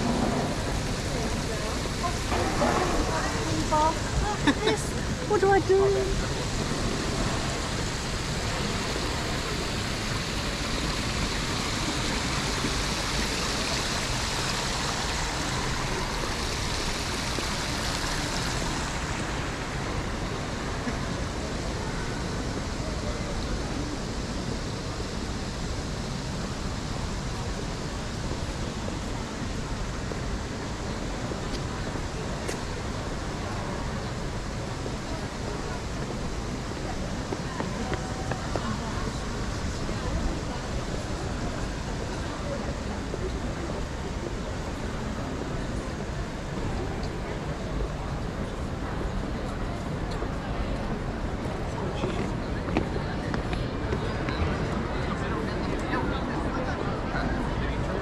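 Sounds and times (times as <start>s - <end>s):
distant crowd voices: 0.0s - 58.0s.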